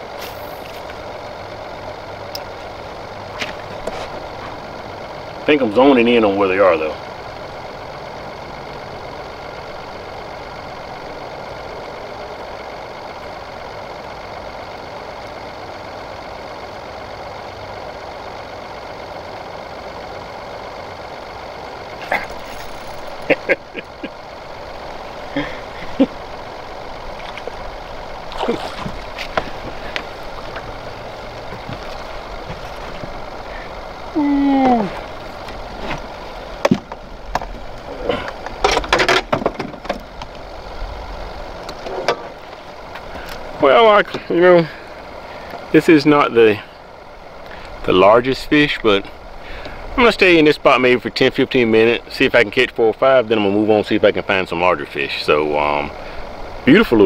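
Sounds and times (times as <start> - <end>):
electric motor hum: 0.0 - 57.0.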